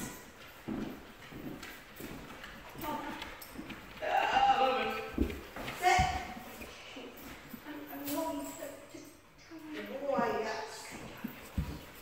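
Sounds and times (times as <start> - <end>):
person's footsteps: 0.0 - 8.8, 9.6 - 12.0
dog claws clicking on hardwood: 1.1 - 6.2.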